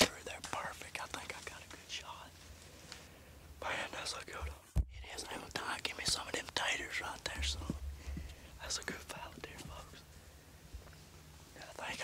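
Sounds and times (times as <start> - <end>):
man whispering: 0.0 - 2.4, 3.6 - 10.1, 11.5 - 12.0
faint low hum: 0.0 - 12.0.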